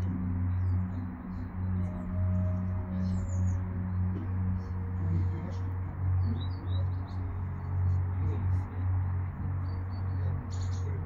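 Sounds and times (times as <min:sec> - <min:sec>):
small birds chirping: 0:00.0 - 0:11.0
steady low rumble: 0:00.0 - 0:11.0.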